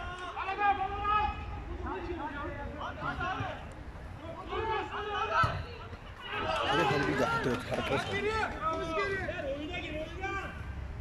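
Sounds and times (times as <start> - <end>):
players calling and shouting: 0.0 - 10.9.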